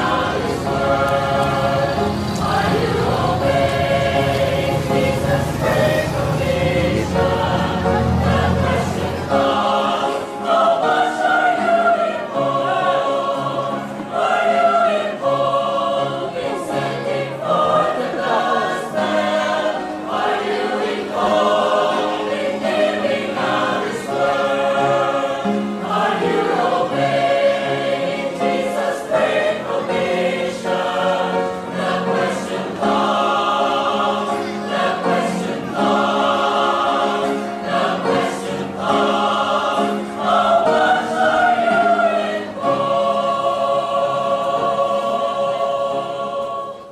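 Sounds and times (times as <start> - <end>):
choir singing slow chords: 0.0 - 46.9.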